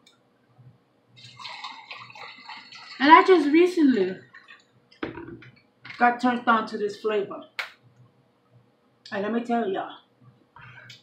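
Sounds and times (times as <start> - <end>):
liquid pouring into glass of ice: 1.2 - 4.6.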